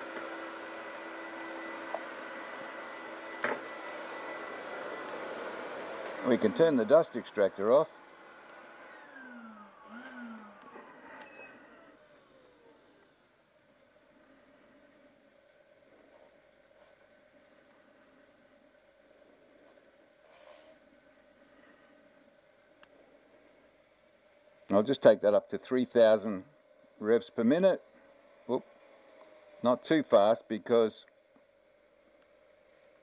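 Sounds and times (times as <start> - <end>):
dust extractor winding down: 0.0 - 23.3, 24.6 - 31.0
faint steady hum: 0.0 - 33.0.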